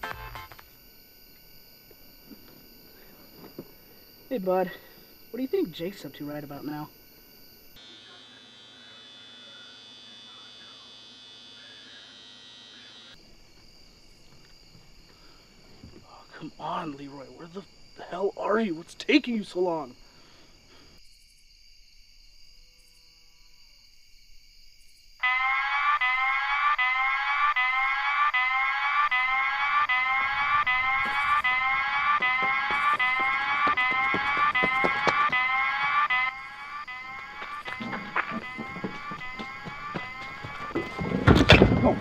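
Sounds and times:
whooping alarm siren: 0.0 - 18.2, 25.2 - 42.0
knocks and thumps: 31.0 - 35.5, 37.4 - 42.0.

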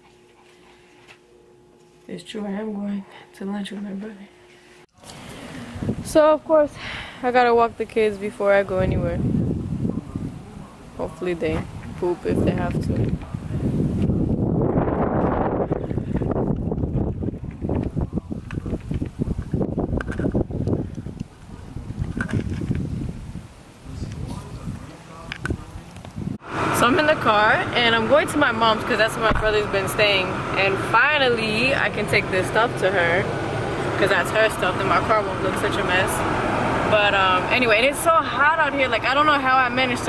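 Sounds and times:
wind buffeting microphone: 5.6 - 6.4, 7.5 - 40.0.

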